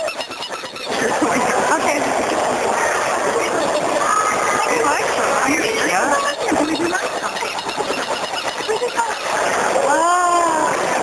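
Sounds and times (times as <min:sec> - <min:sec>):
indistinct background chatter: 0:00.0 - 0:11.0.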